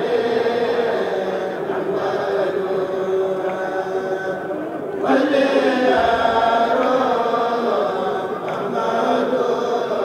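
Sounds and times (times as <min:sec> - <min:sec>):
men chanting in unison: 0:00.0 - 0:10.0.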